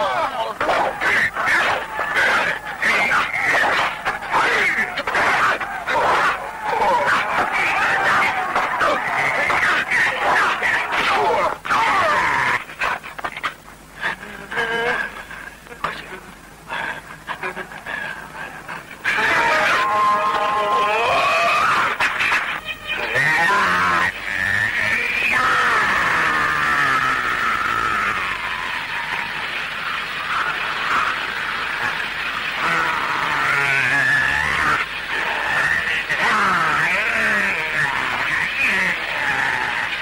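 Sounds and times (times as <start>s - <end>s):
people crying and yelling: 0.0s - 15.8s, 16.6s - 40.0s
lower cries: 17.6s - 40.0s.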